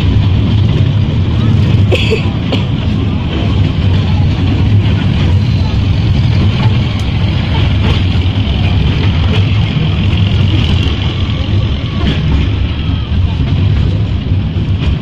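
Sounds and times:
train low rumble: 0:00.0 - 0:15.0.

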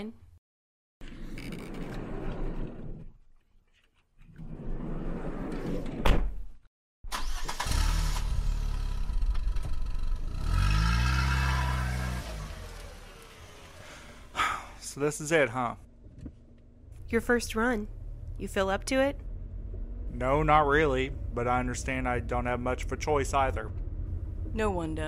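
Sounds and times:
car engine starting and accelerating: 0:07.1 - 0:14.4, 0:16.8 - 0:25.0.

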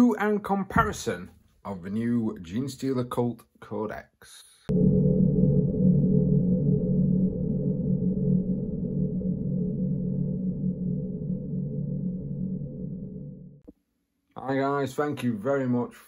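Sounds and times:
low synthesized drone: 0:04.7 - 0:13.7.

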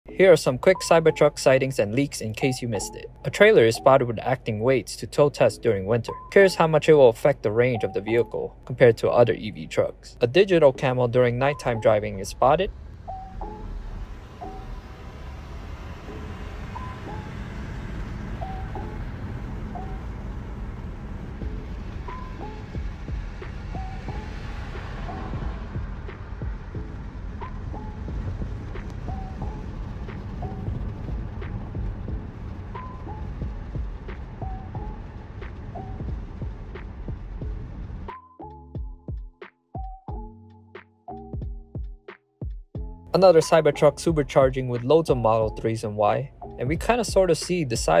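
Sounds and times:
background music: 0:00.1 - 0:48.0
car road noise rumble: 0:10.8 - 0:38.1.

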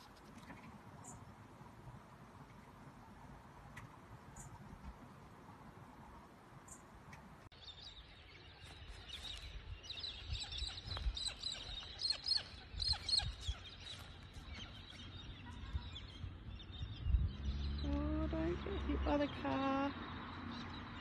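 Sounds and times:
birds chirping: 0:06.6 - 0:21.0.

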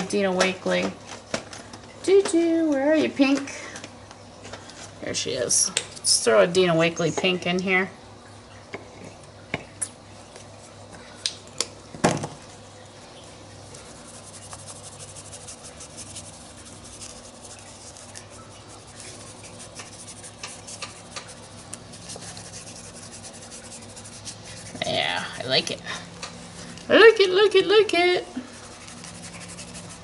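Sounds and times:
paintbrush scrubbing on paper: 0:13.7 - 0:24.9, 0:28.4 - 0:30.0.

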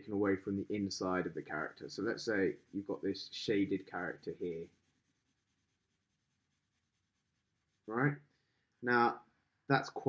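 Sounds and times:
marker scratching on paper: 0:00.5 - 0:07.8.

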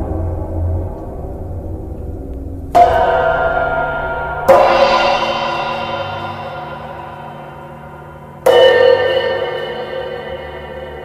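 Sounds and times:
low hum: 0:00.0 - 0:08.5
cymbal struck ringing: 0:00.0 - 0:11.0.

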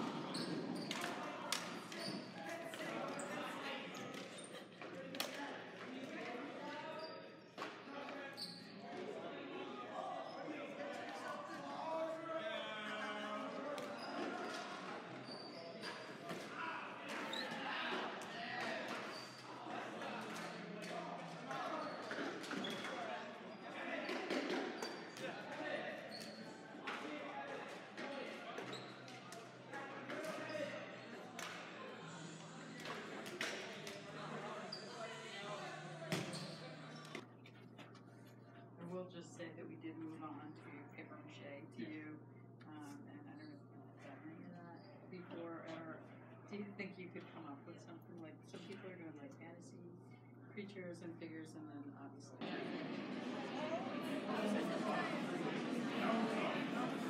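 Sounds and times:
sneakers squeaking: 0:00.0 - 0:05.3, 0:06.9 - 0:09.1, 0:13.5 - 0:25.4, 0:26.0 - 0:26.7, 0:27.8 - 0:38.1
students chattering and shouting: 0:00.0 - 0:37.4, 0:52.4 - 0:57.0.

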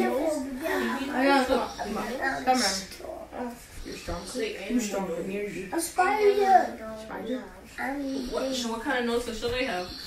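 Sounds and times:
children making wordless vocal sounds: 0:00.0 - 0:04.4, 0:05.8 - 0:08.8
people talking: 0:00.0 - 0:10.0.

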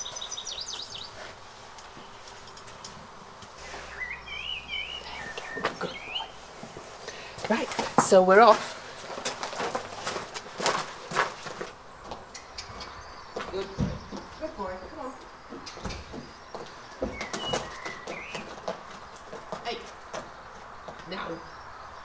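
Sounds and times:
birds chirping: 0:00.0 - 0:08.6, 0:09.3 - 0:22.0
horse hooves on gravel: 0:00.0 - 0:21.2
footsteps crunching on gravel: 0:04.7 - 0:12.3, 0:15.5 - 0:21.1.

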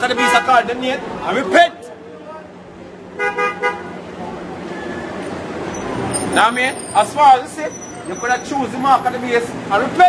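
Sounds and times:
vehicle horn toots: 0:00.0 - 0:00.6, 0:03.2 - 0:04.0
traffic noise: 0:00.0 - 0:10.0.

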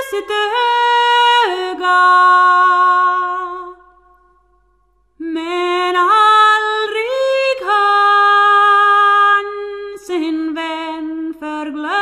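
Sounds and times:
woman singing unaccompanied: 0:00.0 - 0:03.9, 0:05.2 - 0:12.0.

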